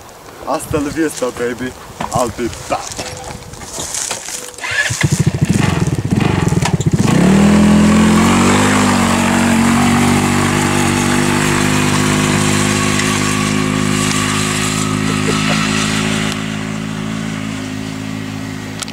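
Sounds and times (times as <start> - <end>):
dune buggy engine revving: 4.5 - 18.9.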